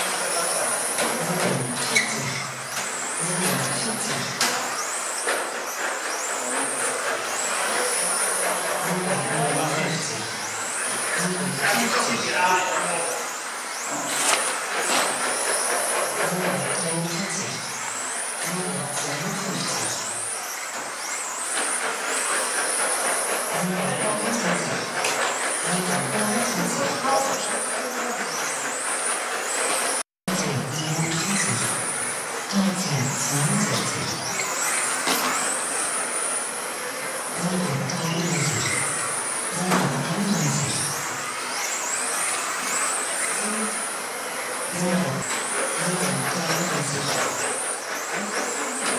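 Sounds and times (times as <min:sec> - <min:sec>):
electric motors whining: 0:00.0 - 0:48.9.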